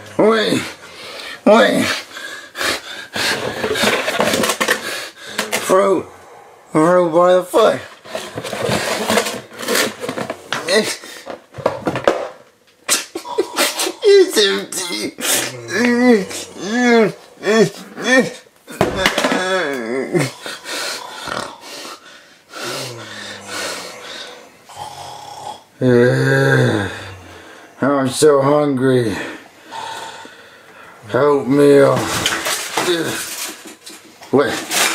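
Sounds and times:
man mock snoring: 0:13.2 - 0:18.5, 0:19.2 - 0:22.0, 0:22.6 - 0:27.4.

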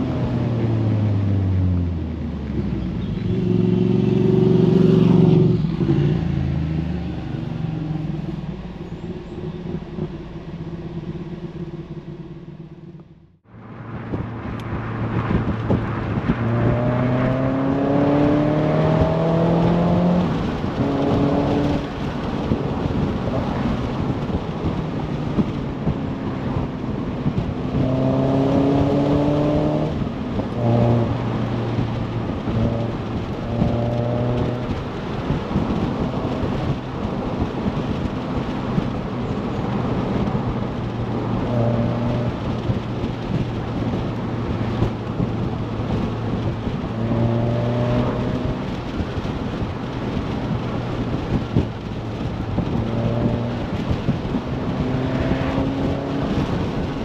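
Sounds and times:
car engine revving: 0:00.0 - 0:57.0
wind and road noise: 0:00.0 - 0:57.0.

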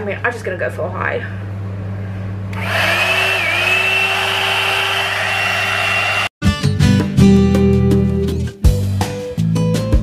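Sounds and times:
hair dryer fan whine: 0:02.5 - 0:06.3.

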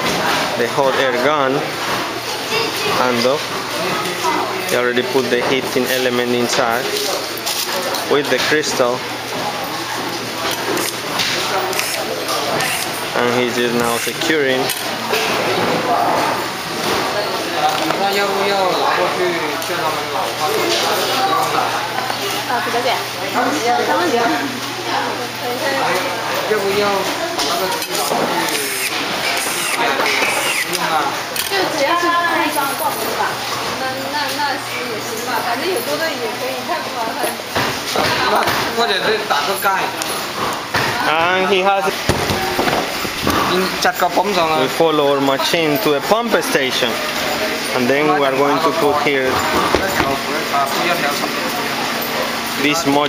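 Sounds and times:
people talking: 0:40.8 - 0:53.0.

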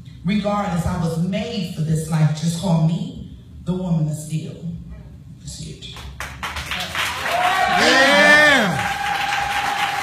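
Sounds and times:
audience cheering and clapping: 0:06.5 - 0:10.0
long vocal whoop: 0:07.3 - 0:10.0.

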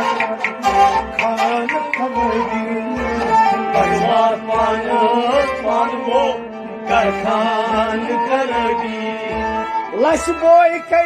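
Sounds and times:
person singing ornamented melody: 0:00.0 - 0:10.2.

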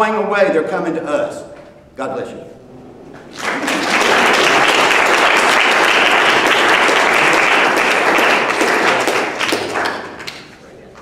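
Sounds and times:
audience applauding: 0:02.8 - 0:10.6.

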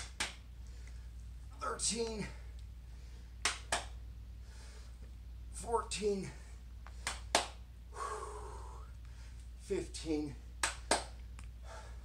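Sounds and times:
low electrical hum: 0:00.0 - 0:12.0
man exhaling hard: 0:07.9 - 0:08.9.

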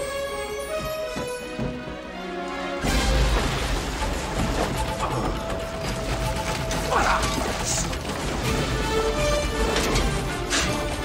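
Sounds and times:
film score music: 0:00.0 - 0:11.0.

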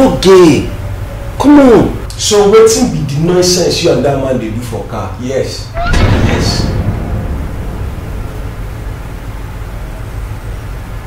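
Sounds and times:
faint hiss: 0:00.0 - 0:11.0
low room rumble: 0:00.0 - 0:11.0.

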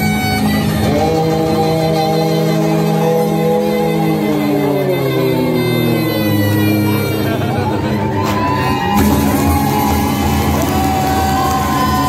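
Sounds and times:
folk band playing: 0:00.0 - 0:12.0.

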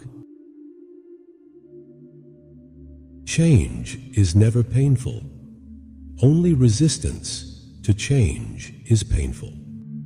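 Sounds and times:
soft ambient music: 0:00.0 - 0:10.0.

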